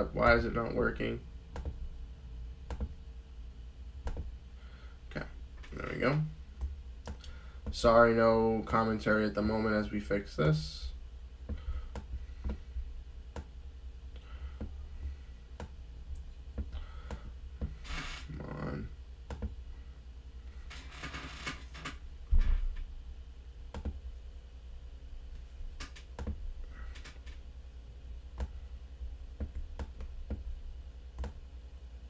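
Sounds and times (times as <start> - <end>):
low hum: 0.0 - 32.0
keyboard and mouse clicks: 1.5 - 1.8, 2.7 - 3.0, 4.0 - 4.3, 19.3 - 19.6, 23.7 - 24.0, 29.4 - 30.4, 31.2 - 31.4.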